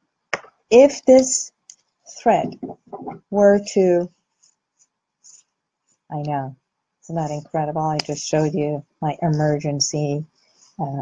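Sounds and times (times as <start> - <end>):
faint scratchy rustles: 4.1 - 6.1.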